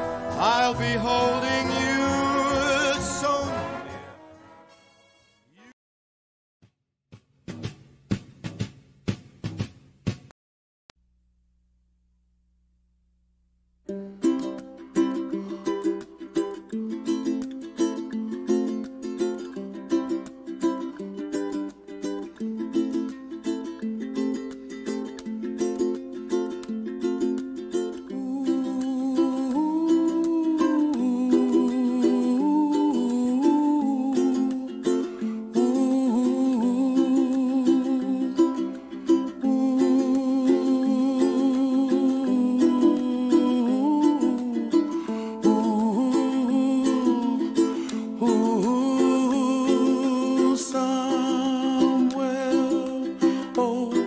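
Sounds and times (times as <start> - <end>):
plucked string instrument: 0.0 - 4.3, 13.9 - 54.0.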